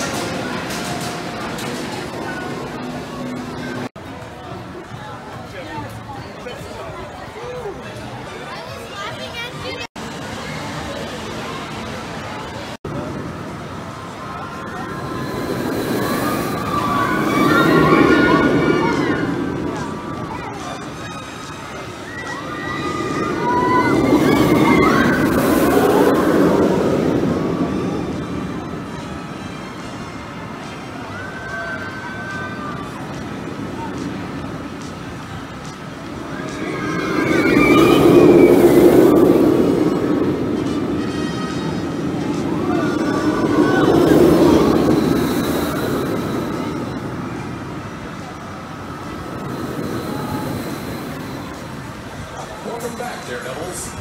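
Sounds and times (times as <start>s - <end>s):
roller coaster rushing along track: 0.0s - 54.0s
riders screaming: 22.0s - 26.8s, 36.4s - 39.3s.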